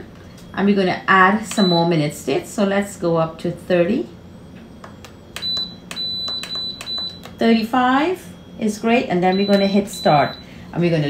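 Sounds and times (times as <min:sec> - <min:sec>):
high-pitched electronic beeps: 0:05.4 - 0:07.3, 0:09.2 - 0:10.5.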